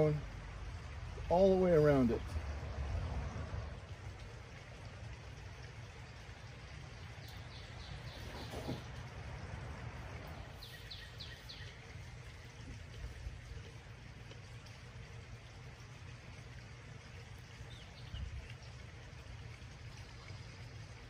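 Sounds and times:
small bird chirping: 0:07.2 - 0:08.8, 0:10.6 - 0:11.8.

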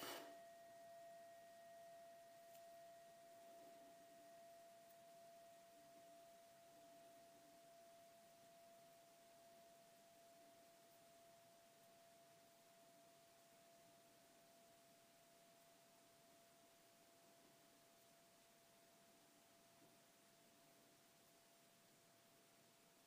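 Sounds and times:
faint steady pure tone: 0:00.0 - 0:23.0.

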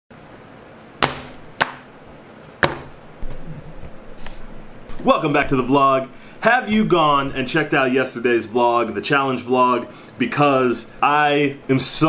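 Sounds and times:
knocks on wooden tabletop: 0:02.6 - 0:02.9.

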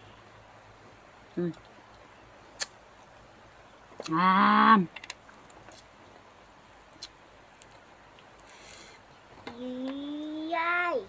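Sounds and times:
clicks and crackles of peeling fruit: 0:01.3 - 0:02.8, 0:03.9 - 0:04.2, 0:04.9 - 0:10.4.

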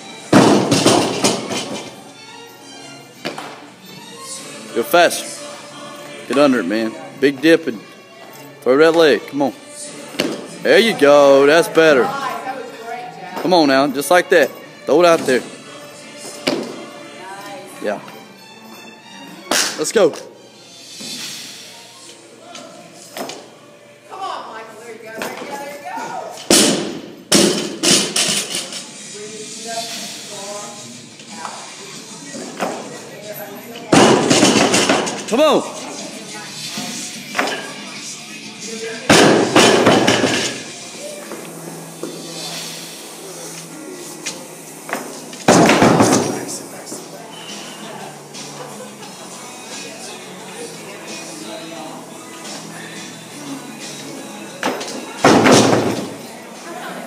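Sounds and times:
background music: 0:00.0 - 0:57.0
barbell crashing onto blocks: 0:00.3 - 0:01.8.

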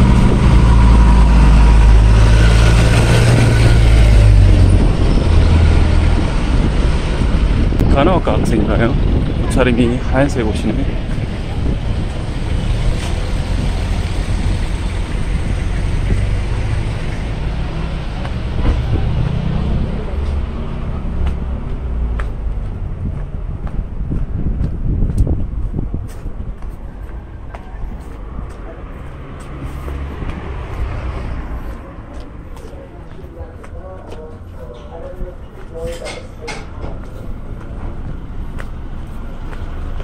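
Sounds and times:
vehicles passing with low rumble: 0:00.0 - 0:40.0.

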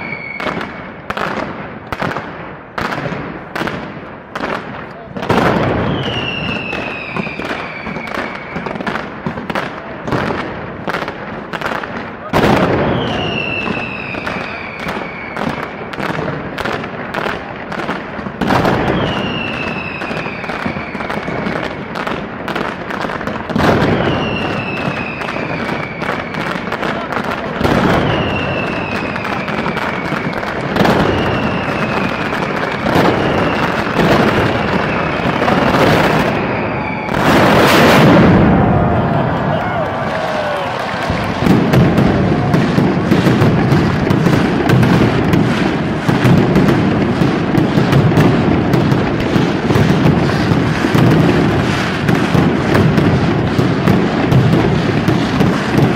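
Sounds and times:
descending whistle: 0:00.0 - 0:00.6, 0:05.8 - 0:08.8, 0:18.8 - 0:21.5, 0:36.2 - 0:37.4
firecrackers banging in volleys: 0:00.0 - 0:55.9
heavy booms: 0:32.8 - 0:55.9.

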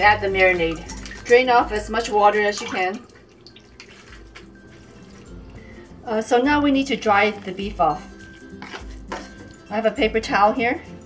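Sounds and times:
water dripping and trickling: 0:00.0 - 0:05.9
quiet background music: 0:00.0 - 0:11.0.

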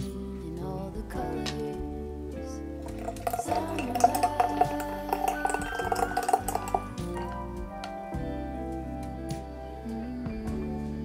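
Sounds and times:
background music: 0:00.0 - 0:11.0
juice pouring into glass pitcher: 0:02.8 - 0:07.3.

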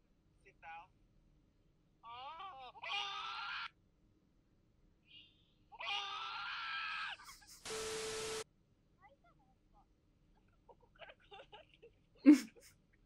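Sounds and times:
hiss: 0:07.6 - 0:08.4.

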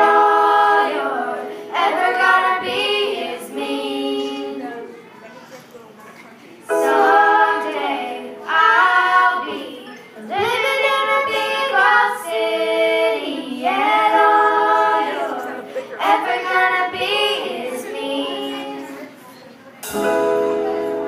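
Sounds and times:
young voices singing: 0:00.0 - 0:05.0, 0:06.7 - 0:19.2.

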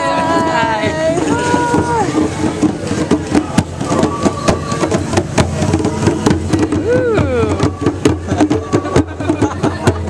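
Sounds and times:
crowd chatter: 0:00.0 - 0:10.0
hand strikes on djembe drums: 0:00.0 - 0:10.0.

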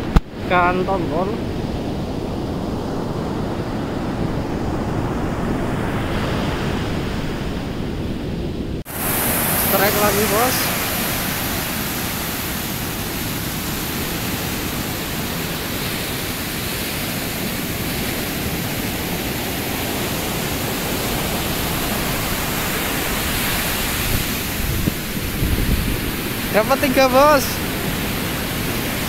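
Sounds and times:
ocean surf breaking: 0:00.0 - 0:29.0.

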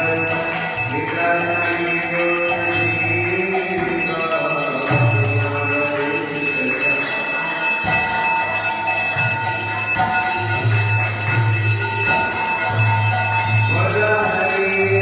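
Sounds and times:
devotional music: 0:00.0 - 0:15.0
temple bells ringing: 0:00.0 - 0:15.0.

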